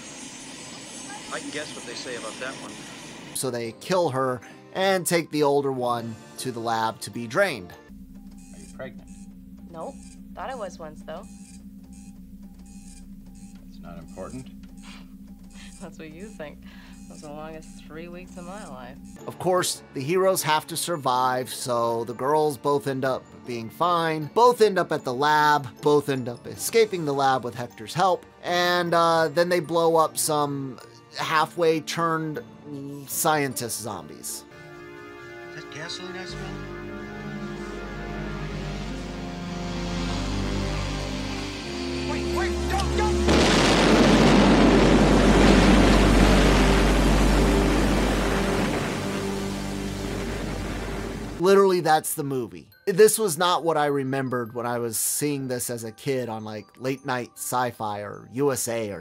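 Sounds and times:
rhythmic mechanical whirring: 0.0 - 3.4, 7.9 - 19.2, 36.3 - 43.4
dark film score chords: 7.8 - 19.4, 34.5 - 51.4
deep bass note: 7.9 - 19.2, 36.0 - 51.4
low machine hum: 7.9 - 19.2, 36.3 - 51.4
woman's voice: 9.7 - 11.3, 15.6 - 19.0.

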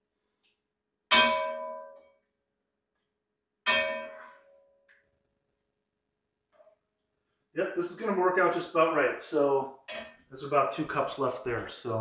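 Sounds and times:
metal pot clanging: 9.9 - 10.3.

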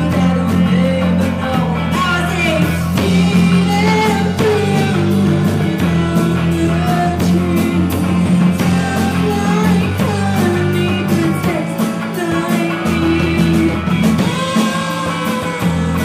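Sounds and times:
drum and cymbal hits: 0.0 - 16.0
live rock band playing: 0.0 - 16.0
person singing: 0.0 - 16.0.

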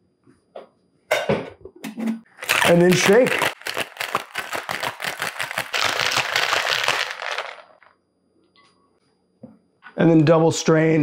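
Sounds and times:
ice rattling in cocktail shaker: 2.4 - 7.9.

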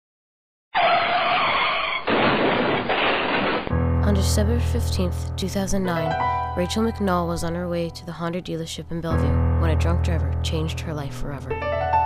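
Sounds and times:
car tyres screeching: 0.8 - 2.1.

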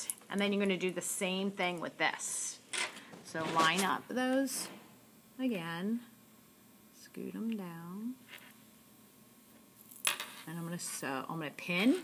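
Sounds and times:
woman's voice: 3.2 - 4.8, 5.4 - 6.1, 7.0 - 8.2, 10.5 - 12.0.

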